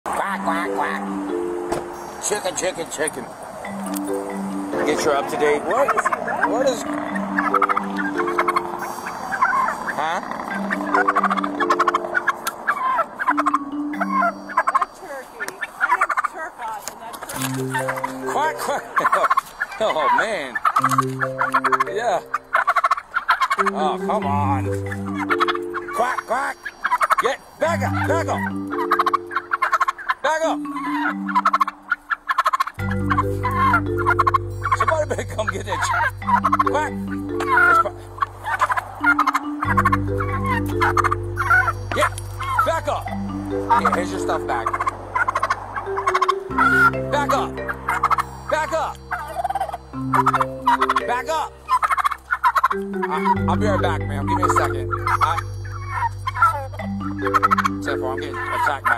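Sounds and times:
background music with low notes: 0.1s - 14.9s, 17.4s - 19.2s, 20.2s - 58.9s
turkey gobbling: 0.1s - 58.9s.

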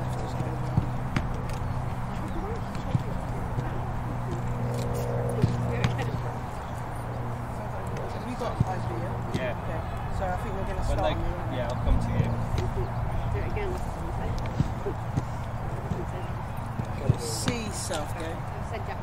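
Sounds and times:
distant indistinct voices: 0.0s - 19.0s
steady low hum: 0.0s - 19.0s.

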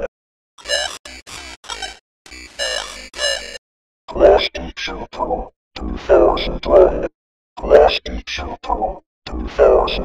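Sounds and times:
garbled text-to-speech voice: 0.0s - 10.0s.

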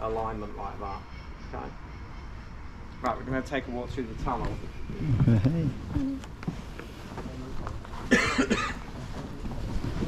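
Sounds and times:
faint footsteps: 4.3s - 10.0s
person coughing: 8.1s - 8.8s.

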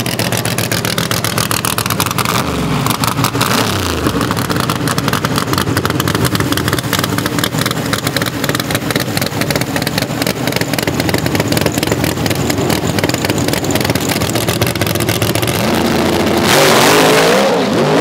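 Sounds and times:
drag race engine revving: 0.0s - 18.0s.

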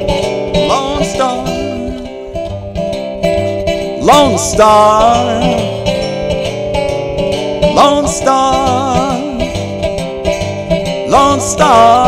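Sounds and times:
resonator guitar blues rhythm: 0.0s - 12.0s.

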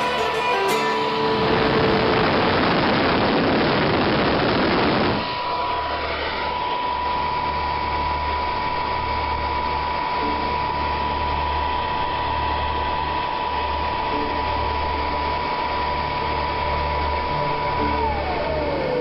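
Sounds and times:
electric fan hissing and whining: 0.0s - 19.0s.

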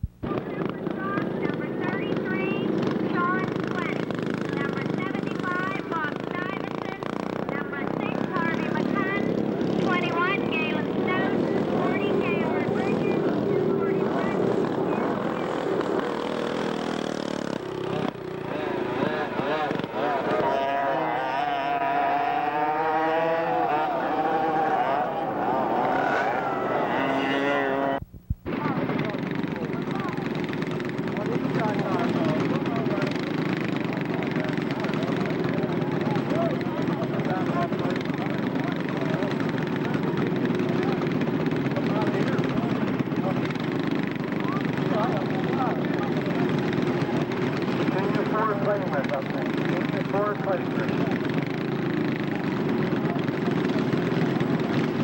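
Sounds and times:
go-kart engines running: 0.0s - 55.0s
spectators talking: 0.2s - 55.0s.

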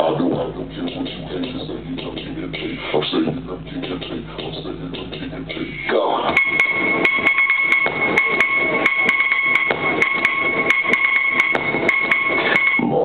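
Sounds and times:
high ringing tone: 6.4s - 12.8s.

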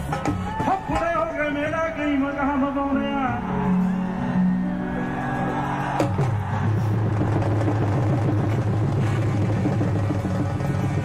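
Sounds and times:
live band music: 3.6s - 11.0s.

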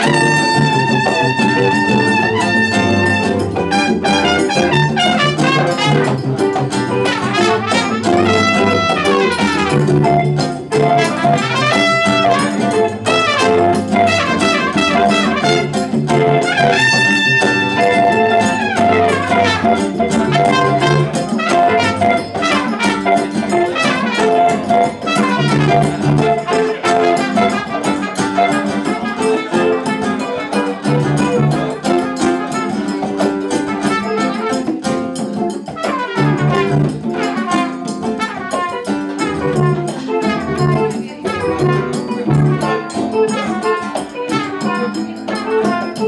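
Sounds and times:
double bass: 0.0s - 35.1s, 35.8s - 46.0s
acoustic and electric guitars: 0.0s - 46.0s
congas: 0.0s - 46.0s
trumpet: 0.0s - 46.0s.

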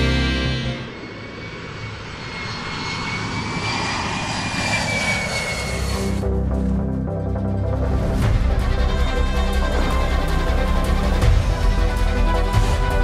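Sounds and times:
music: 0.0s - 0.9s, 6.0s - 13.0s
jet airplane flyover: 0.0s - 13.0s.

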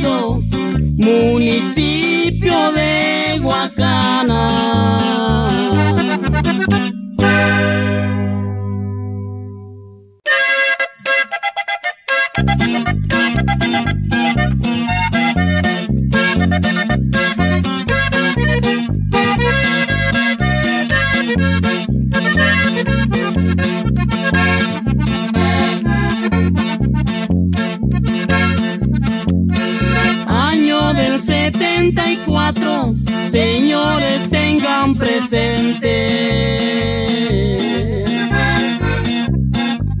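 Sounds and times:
choppy accordion intro: 0.0s - 9.6s, 10.2s - 40.0s
accordion and bass chord: 0.0s - 40.0s.

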